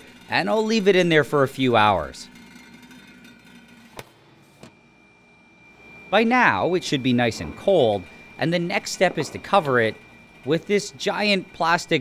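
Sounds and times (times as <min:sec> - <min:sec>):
high-pitched whine: 0:00.0 - 0:04.0, 0:04.8 - 0:12.0.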